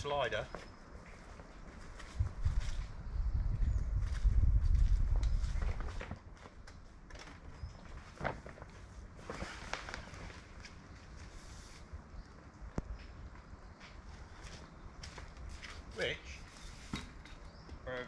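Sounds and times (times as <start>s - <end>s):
gusty wind rumble on microphone: 1.8s - 6.3s.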